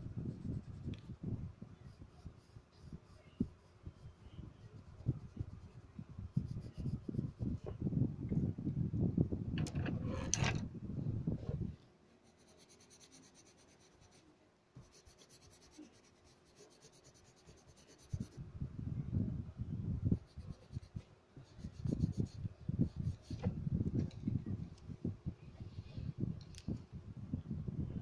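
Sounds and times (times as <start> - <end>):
pencil scratching on paper: 1.8 - 7.6, 9.8 - 10.6, 12.2 - 18.4, 20.2 - 23.5.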